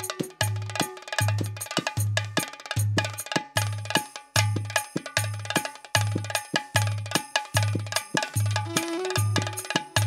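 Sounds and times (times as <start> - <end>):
bright percussion strikes: 3.2 - 10.0
held melody line: 8.6 - 10.0.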